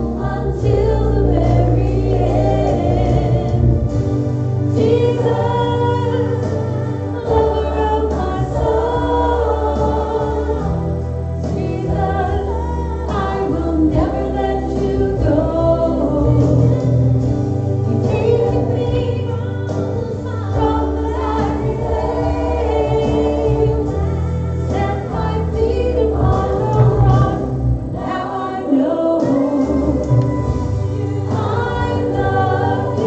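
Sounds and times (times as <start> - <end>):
backing band with bass line: 0.0 - 33.0
group singing worship song: 0.0 - 33.0.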